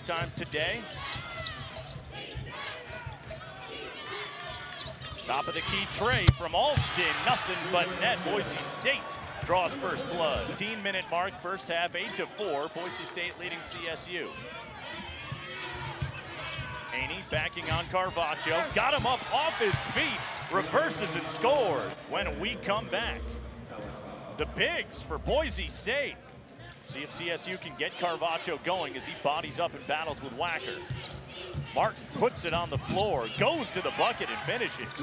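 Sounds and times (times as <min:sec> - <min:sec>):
sneakers squeaking on floor: 0:00.0 - 0:06.8, 0:13.5 - 0:20.0, 0:30.6 - 0:34.1
arena crowd murmur: 0:00.0 - 0:35.0.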